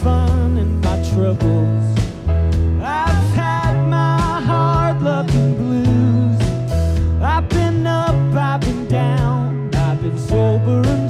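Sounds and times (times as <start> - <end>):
live country band playing: 0.0 - 11.0.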